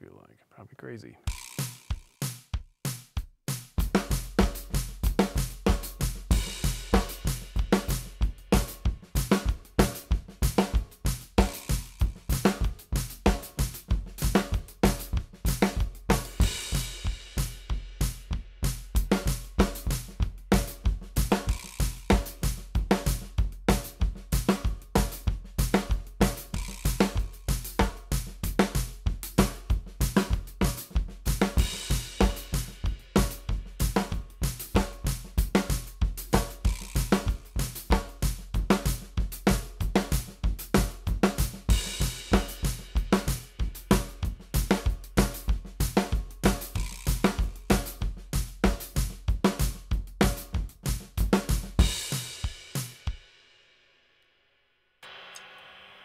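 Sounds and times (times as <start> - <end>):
drum kit groove: 0.8 - 53.6.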